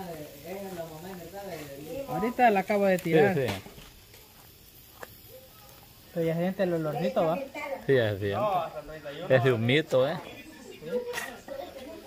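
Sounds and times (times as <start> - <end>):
meat sizzling on a grill: 0.0 - 12.0.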